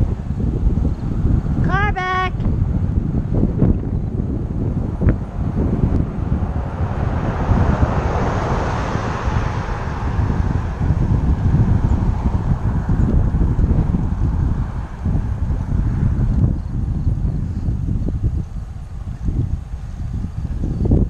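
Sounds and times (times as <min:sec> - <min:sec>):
car tyre and road noise: 0:00.0 - 0:21.0
wind buffeting microphone: 0:00.0 - 0:21.0.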